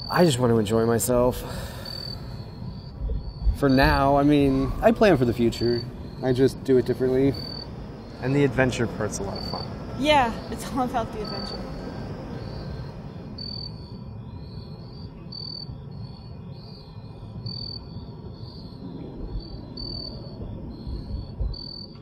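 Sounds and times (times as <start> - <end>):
distant city rumble: 0.0 - 22.0
insects chirping: 0.0 - 22.0.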